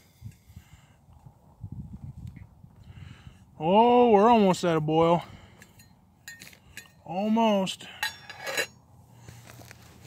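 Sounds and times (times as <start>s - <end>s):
wind buffeting microphone: 0.1s - 3.6s.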